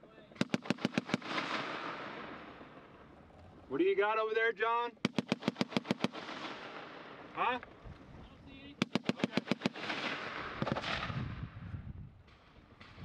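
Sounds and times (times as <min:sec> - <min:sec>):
rolling echo of gunfire: 0:00.3 - 0:03.2, 0:05.0 - 0:07.4, 0:08.7 - 0:11.6.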